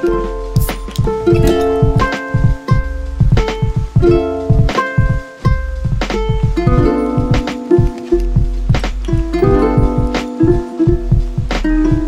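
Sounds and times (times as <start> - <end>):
plucked-string notes: 0.0 - 12.0
steady beat: 0.0 - 12.0.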